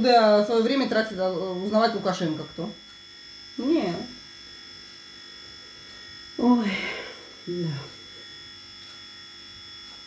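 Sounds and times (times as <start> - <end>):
electrical buzz with high whine: 0.0 - 10.0.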